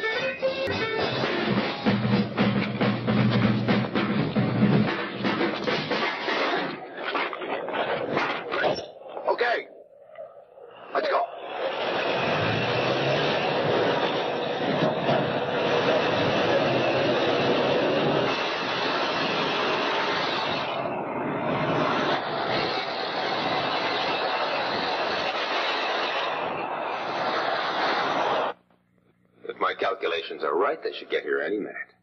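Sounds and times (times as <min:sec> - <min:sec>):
motor vehicle engine and rolling: 0:00.0 - 0:09.2, 0:10.6 - 0:28.6.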